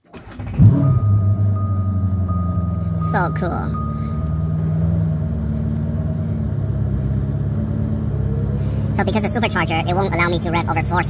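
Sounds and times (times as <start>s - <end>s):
car engine starting and idling: 0.0s - 11.0s.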